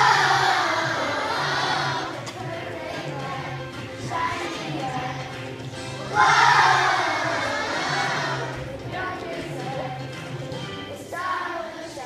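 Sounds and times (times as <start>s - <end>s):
children shouting: 0.0s - 2.1s, 6.1s - 8.5s
backing music track: 0.0s - 12.0s.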